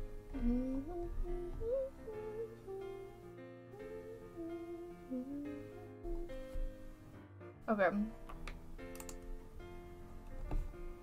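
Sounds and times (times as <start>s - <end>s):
quiet background music: 0.0s - 11.0s
person humming: 0.2s - 6.8s.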